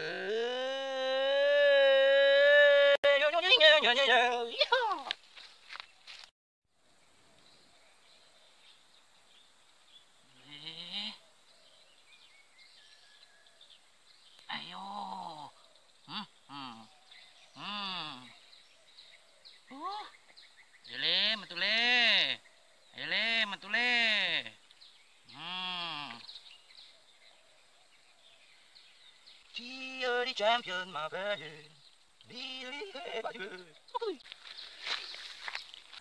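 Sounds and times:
rising vocal sound: 0:00.0 - 0:03.0
livestock bleating: 0:10.3 - 0:11.2.

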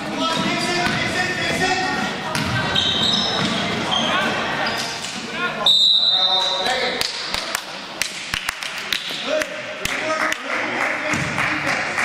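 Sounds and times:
chatter of voices: 0:00.0 - 0:12.0
basketball bouncing: 0:00.4 - 0:01.2, 0:02.2 - 0:03.7
sneakers squeaking on gym floor: 0:02.3 - 0:06.7
referee's whistle: 0:05.6 - 0:06.6.

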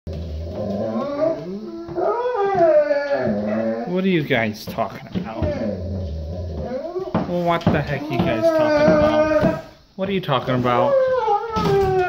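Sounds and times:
dog howling: 0:00.3 - 0:04.0, 0:05.2 - 0:09.8, 0:10.7 - 0:12.0.

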